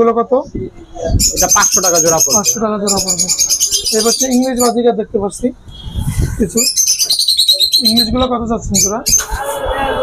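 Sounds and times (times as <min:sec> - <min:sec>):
budgerigars chattering: 0:01.2 - 0:04.8, 0:06.4 - 0:09.3.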